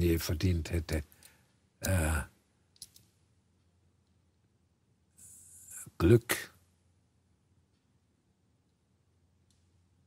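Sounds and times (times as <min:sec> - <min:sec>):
man sighing: 0:01.8 - 0:02.3.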